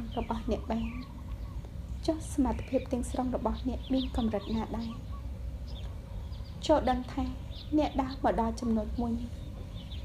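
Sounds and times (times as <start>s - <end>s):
woman reading aloud: 0.0s - 1.1s, 2.0s - 5.0s, 6.6s - 9.4s
steady low hum: 0.0s - 10.0s.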